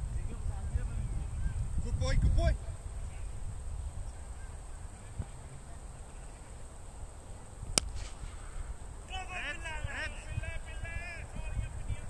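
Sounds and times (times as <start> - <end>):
cricket bat hitting ball: 7.7 - 8.7.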